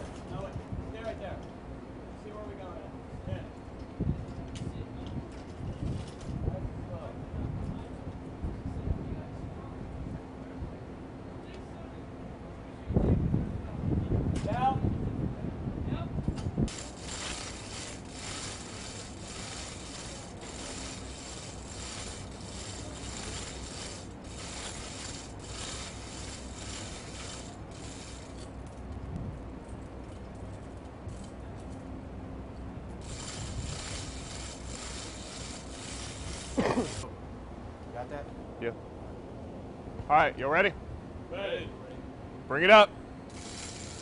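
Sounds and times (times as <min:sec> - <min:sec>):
chain hoist ratchet rattling: 0:16.7 - 0:28.9, 0:29.6 - 0:31.9, 0:32.9 - 0:37.0, 0:43.3 - 0:44.0.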